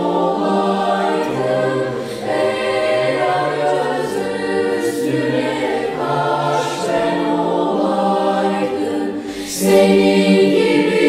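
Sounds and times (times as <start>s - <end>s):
girls' choir singing in harmony: 0.0s - 11.0s.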